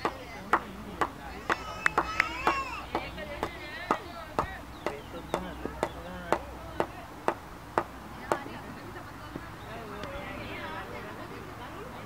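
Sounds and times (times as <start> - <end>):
hand claps: 0.0 - 6.4
voices calling out: 0.0 - 12.0.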